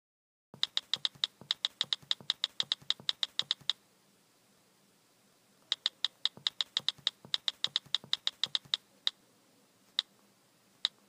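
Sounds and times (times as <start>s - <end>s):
keyboard keystrokes typing: 0.6s - 3.8s, 5.7s - 8.8s.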